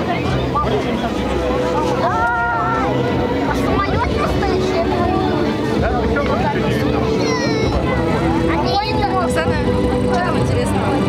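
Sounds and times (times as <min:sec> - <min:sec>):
propeller planes droning past: 0:00.0 - 0:11.0
spectators talking: 0:00.0 - 0:11.0.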